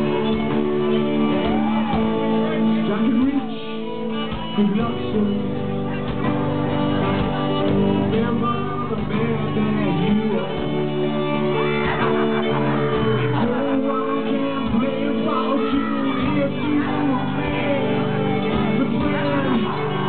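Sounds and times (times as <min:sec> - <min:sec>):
fiddle: 0:00.0 - 0:20.0
guitar: 0:00.0 - 0:20.0
live band music: 0:00.0 - 0:20.0.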